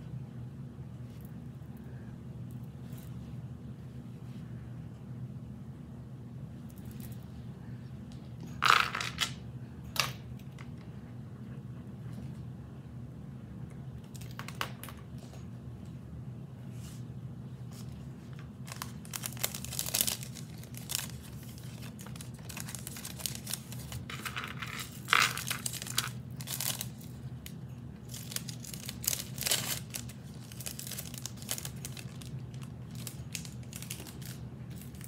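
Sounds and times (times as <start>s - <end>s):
steady low hum: 0.0s - 35.0s
wrapper rustling and crinkling: 17.7s - 35.0s.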